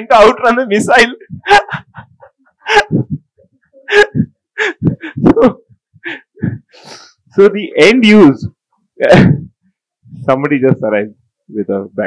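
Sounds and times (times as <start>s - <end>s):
man laughing: 1.2s - 6.5s.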